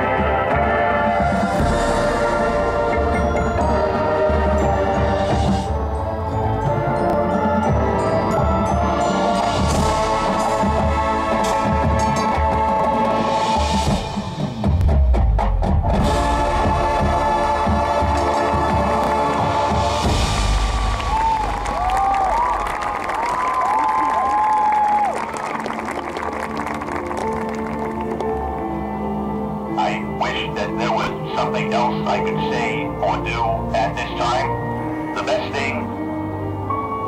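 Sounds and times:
marching band brass and drums: 0.0s - 23.2s, 29.8s - 35.9s
crowd cheering: 20.6s - 29.2s.

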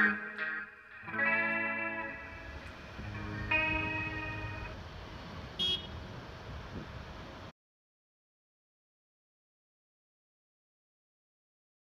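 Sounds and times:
distorted electric guitar chords: 0.0s - 4.8s
low steady rumble: 2.5s - 7.4s.

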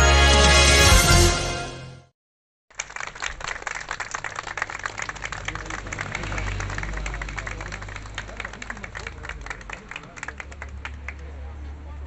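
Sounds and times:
crowd clapping: 2.7s - 12.0s.

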